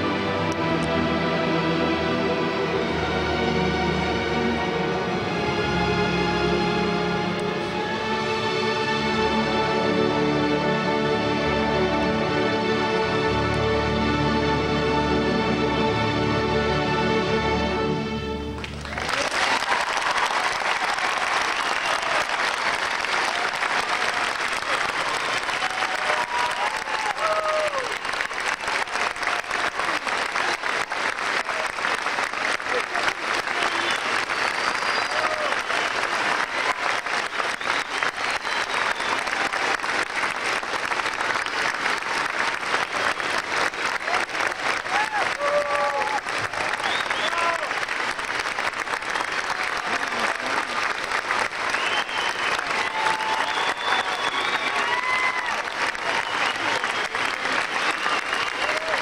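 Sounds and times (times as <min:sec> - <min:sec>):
audience applause: 0:18.5 - 0:59.0.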